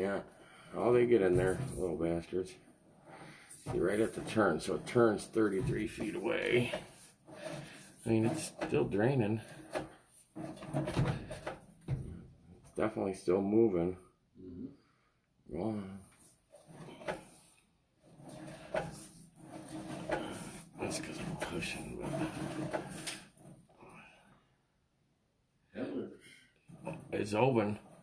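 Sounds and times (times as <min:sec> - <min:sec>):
cable rubbing and knocking in drain: 0:00.8 - 0:12.8, 0:16.2 - 0:23.9, 0:26.7 - 0:28.0.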